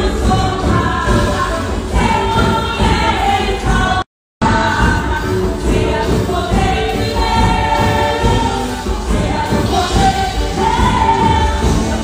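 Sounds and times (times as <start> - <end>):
congregation singing: 0.0 - 12.0.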